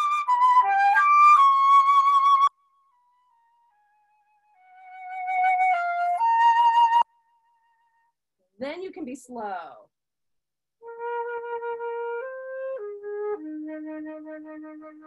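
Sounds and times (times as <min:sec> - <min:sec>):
flute playing slow phrase: 0:00.0 - 0:08.1, 0:10.8 - 0:15.0.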